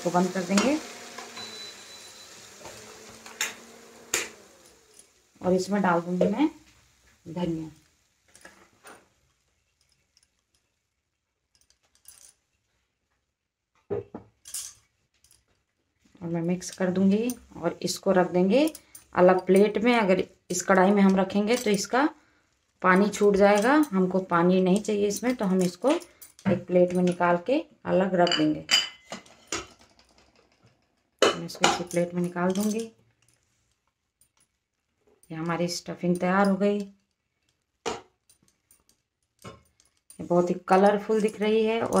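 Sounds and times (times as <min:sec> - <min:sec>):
bangles clinking: 0:11.4 - 0:12.5, 0:21.4 - 0:22.0, 0:22.9 - 0:27.2, 0:31.4 - 0:33.4.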